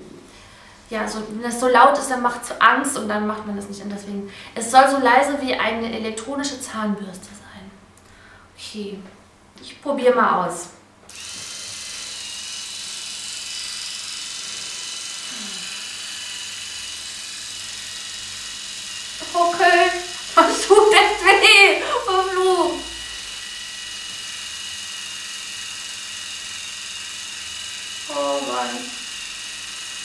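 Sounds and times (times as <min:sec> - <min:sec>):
epilator buzzing hum: 0:11.1 - 0:30.0.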